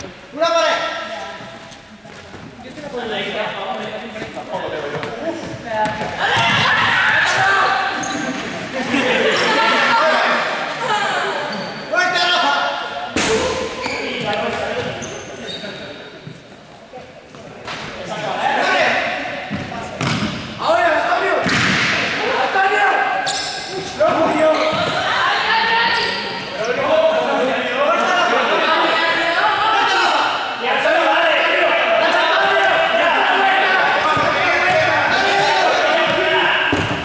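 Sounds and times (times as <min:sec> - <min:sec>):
players calling out: 0:02.7 - 0:16.0, 0:18.1 - 0:37.0
ball striking floor and walls: 0:19.5 - 0:20.6, 0:21.4 - 0:22.2, 0:34.0 - 0:37.0.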